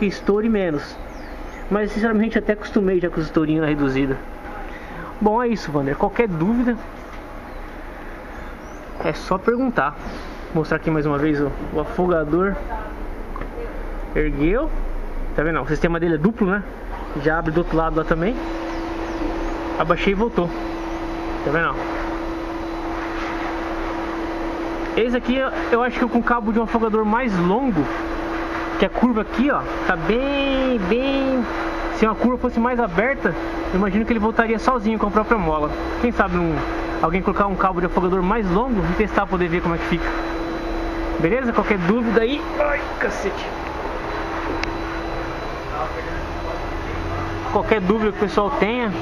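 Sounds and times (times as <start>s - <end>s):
steady machine hum: 0.0s - 49.0s.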